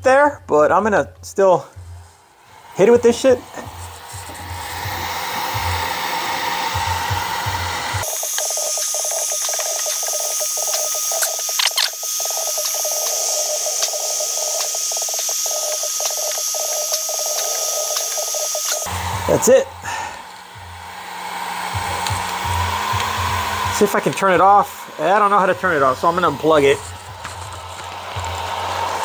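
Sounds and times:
heat gun blowing: 1.6 - 29.0.

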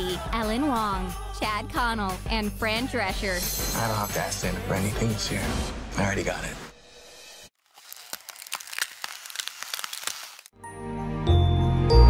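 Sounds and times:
high-pitched crackles and clicks: 7.6 - 10.5.

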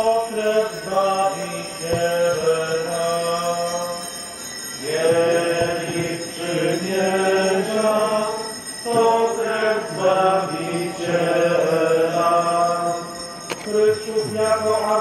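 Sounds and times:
voices singing a hymn: 0.0 - 15.0.

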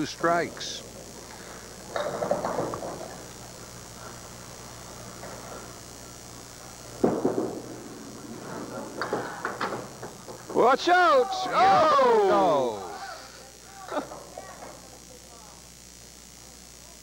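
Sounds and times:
low hum: 0.0 - 16.6
bowling ball thud on wooden lane: 7.0 - 7.6
bowling ball rumbling: 7.0 - 10.6.

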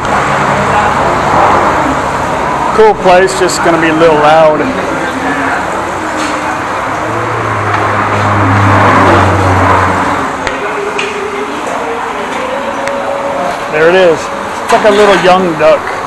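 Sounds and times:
indistinct voices: 0.0 - 16.0
vehicle engine hum and tyre noise: 4.8 - 14.7.

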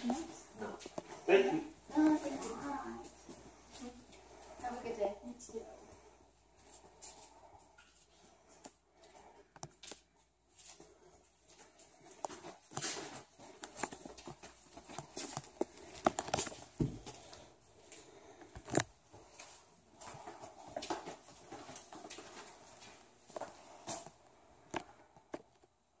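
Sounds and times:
faint footsteps: 0.0 - 25.8.

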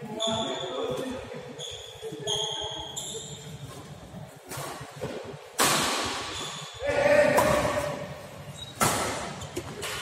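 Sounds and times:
shoes squeaking on court: 0.1 - 4.9, 6.2 - 6.8, 8.4 - 10.0.

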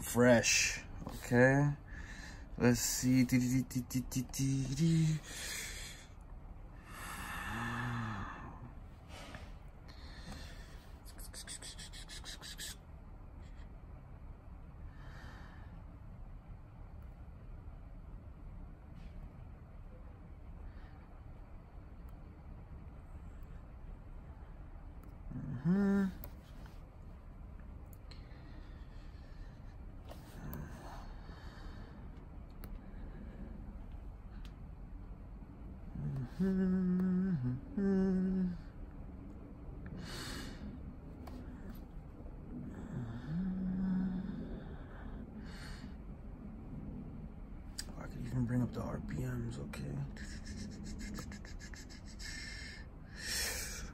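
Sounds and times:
faint low rumble: 0.0 - 53.9
breathy exhale: 6.8 - 10.9
person humming or groaning: 25.3 - 26.3, 35.9 - 38.8, 42.8 - 44.6.

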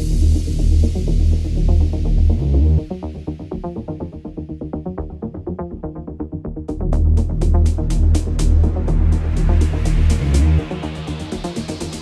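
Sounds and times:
deep house track: 6.3 - 12.0.

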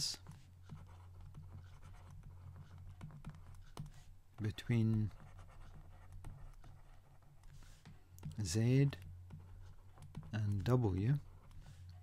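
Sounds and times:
stylus writing on tablet: 0.0 - 12.0.

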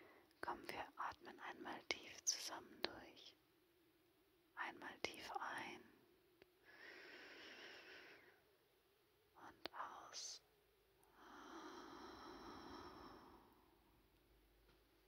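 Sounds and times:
woman whispering: 0.4 - 3.4, 4.6 - 5.9, 9.4 - 10.4
deep breath: 6.6 - 8.5, 11.1 - 13.8.

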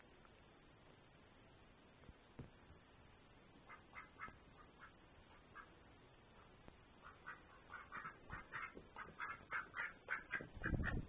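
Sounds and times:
duck quacking: 3.6 - 5.8, 6.4 - 11.0.

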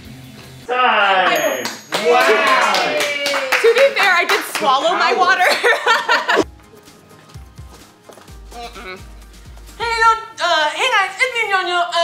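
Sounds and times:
hand claps: 1.4 - 4.9.

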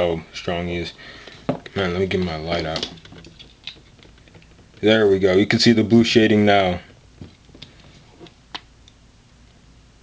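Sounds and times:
person speaking: 0.0 - 3.4, 4.2 - 8.3
faint clicks and handling noise: 0.8 - 9.6.

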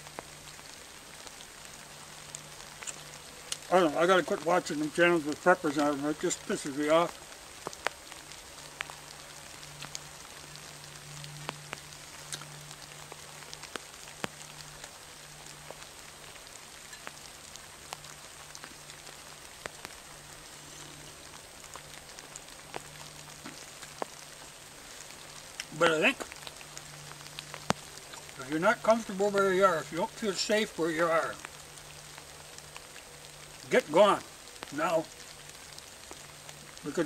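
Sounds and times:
steady rain: 0.0 - 37.0.

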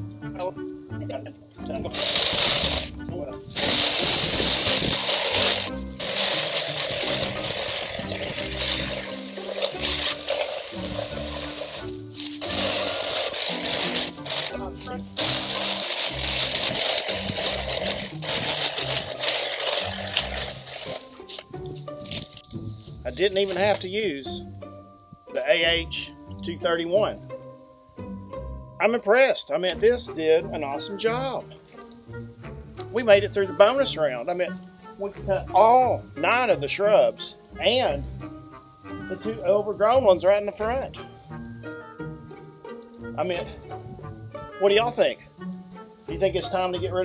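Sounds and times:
background music: 0.0 - 47.0
hedge trimmer cutting stems: 1.6 - 24.0.

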